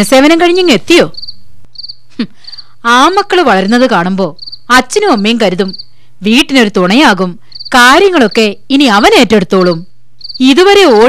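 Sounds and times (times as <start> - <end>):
crickets chirping: 1.1 - 6.0, 7.4 - 8.6, 9.4 - 11.0.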